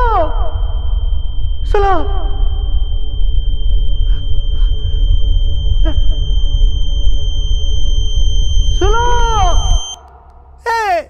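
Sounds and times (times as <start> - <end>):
high ringing tone: 0.0 - 10.6
low rumble drone: 0.0 - 10.8.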